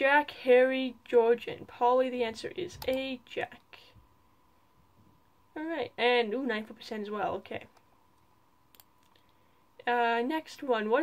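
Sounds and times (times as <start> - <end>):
computer mouse click: 7.7 - 9.4.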